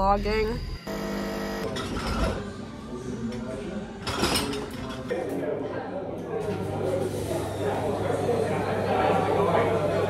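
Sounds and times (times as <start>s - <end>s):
espresso machine pump buzzing: 0.6s - 1.7s.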